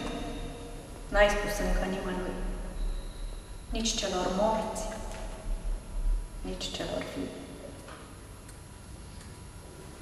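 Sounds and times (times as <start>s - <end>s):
woman speaking: 0.0s - 2.6s, 3.7s - 5.1s, 6.4s - 7.5s.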